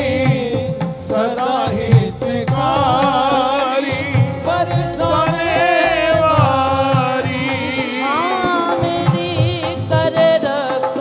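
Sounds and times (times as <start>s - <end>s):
accompanying instruments: 0.0s - 11.0s
hand drum beats: 0.0s - 11.0s
wavering sung melody: 2.7s - 10.0s.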